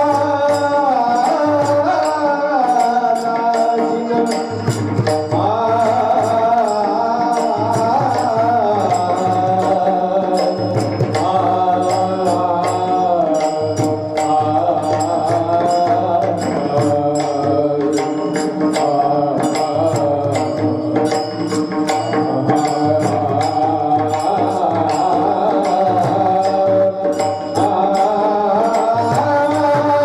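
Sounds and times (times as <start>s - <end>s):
man singing into a microphone: 0.0s - 30.0s
percussion beat: 0.0s - 30.0s.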